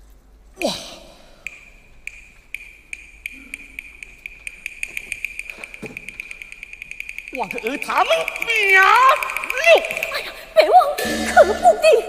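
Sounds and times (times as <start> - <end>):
woodblock strikes: 1.5 - 12.0.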